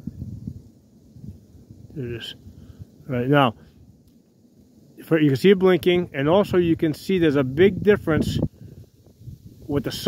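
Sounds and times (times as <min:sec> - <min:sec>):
low rumble on microphone: 0:00.0 - 0:10.0.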